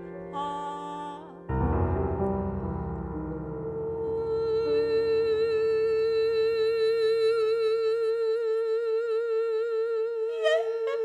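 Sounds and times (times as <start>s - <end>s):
woman singing long note: 0.3s - 1.4s, 3.4s - 11.0s.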